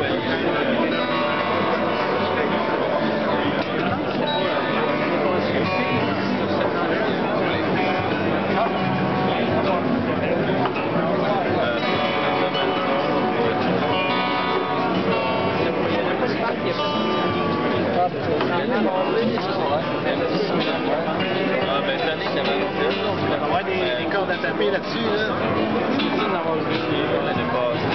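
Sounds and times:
crowd chatter: 0:00.0 - 0:27.9
harp guitar fingerstyle: 0:00.0 - 0:27.9.

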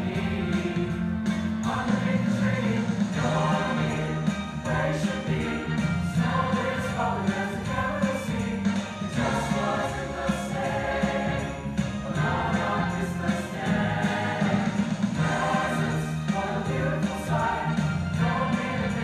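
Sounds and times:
choir singing: 0:00.0 - 0:19.0
instrumental accompaniment: 0:00.0 - 0:19.0.

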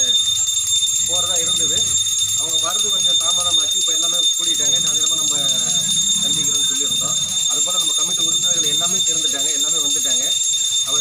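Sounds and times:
men talking: 0:01.0 - 0:11.0.

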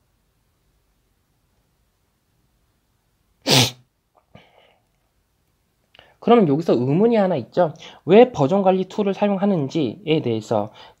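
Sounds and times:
person sneezing: 0:03.4 - 0:04.6.

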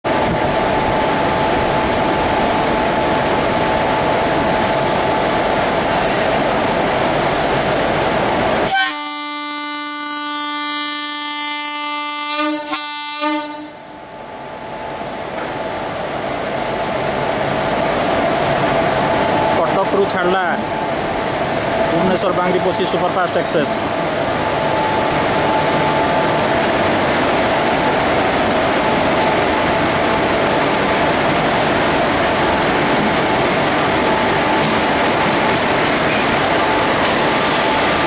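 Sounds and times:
electric locomotive rumbling: 0:00.1 - 0:38.0
train horn blast: 0:08.7 - 0:13.8.

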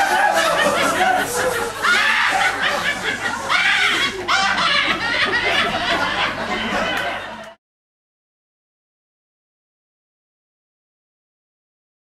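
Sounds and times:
excited voices: 0:00.0 - 0:07.5
group of people laughing: 0:00.0 - 0:07.6.

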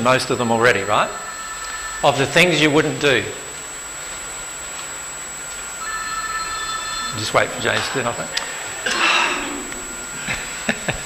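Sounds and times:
room hush: 0:00.0 - 0:11.0
electronic phone ring tone: 0:00.6 - 0:03.0, 0:05.8 - 0:07.7.

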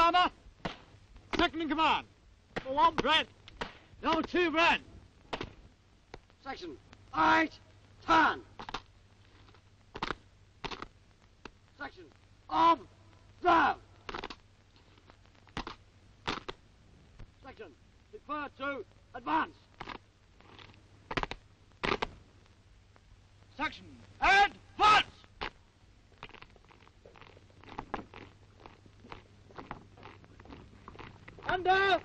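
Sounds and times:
old film soundtrack hum: 0:00.0 - 0:32.0
boots striking ground: 0:26.2 - 0:32.0.

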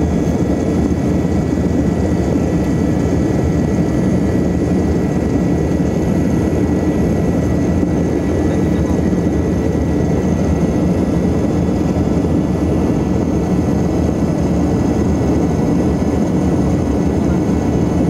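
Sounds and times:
jet engine drone in cabin: 0:00.0 - 0:18.0
thin steady whine: 0:00.0 - 0:18.0.

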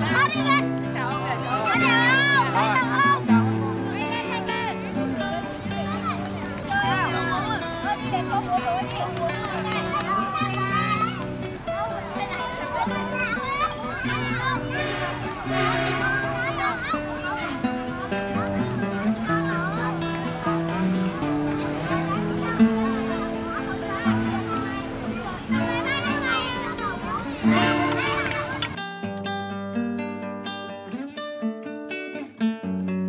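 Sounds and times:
children chattering and calling out: 0:00.0 - 0:31.5
background music held notes: 0:00.0 - 0:33.0.

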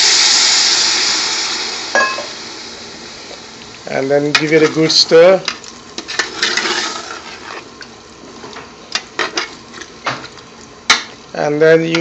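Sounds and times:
hiss from hot pot: 0:00.0 - 0:03.6
metal ladle scraping a pot: 0:06.0 - 0:07.7.

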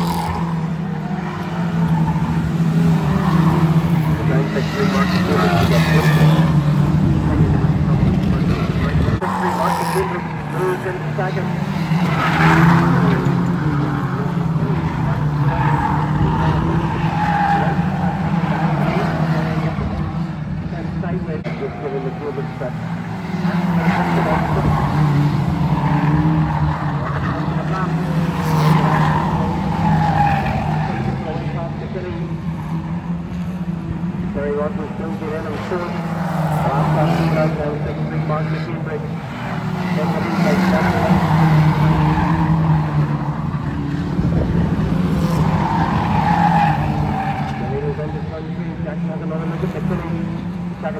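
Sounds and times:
race car engines revving: 0:00.0 - 0:50.9
tyres squealing: 0:45.0 - 0:47.8.

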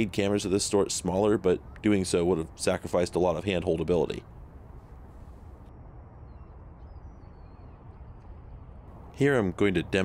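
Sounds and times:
faint bird chirps: 0:06.2 - 0:08.9.

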